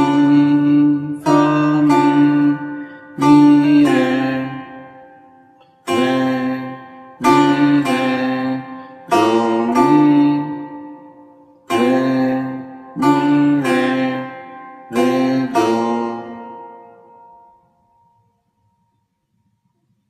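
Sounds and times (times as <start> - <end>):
setar plucked notes: 0.0 - 19.9.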